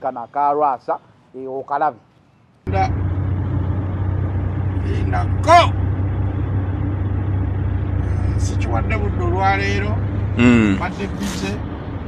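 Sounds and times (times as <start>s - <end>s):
vehicle rumble from inside: 2.7s - 12.0s
person speaking: 9.1s - 11.5s.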